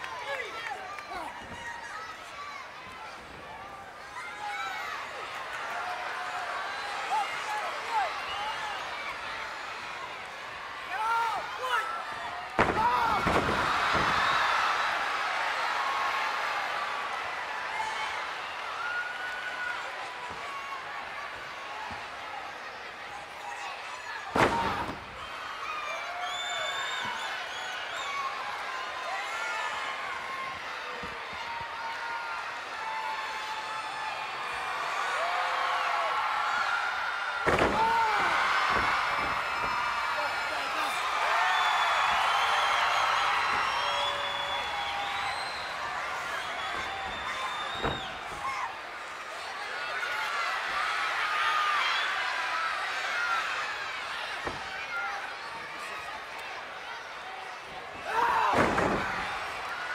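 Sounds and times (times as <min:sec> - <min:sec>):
crowd noise: 0:00.0 - 0:59.9
body slamming onto wrestling ring: 0:12.6 - 0:14.4, 0:58.3 - 0:59.4
wrestler slamming onto ring: 0:12.6 - 0:14.5, 0:24.4 - 0:25.2, 0:37.4 - 0:40.1, 0:58.2 - 0:59.5.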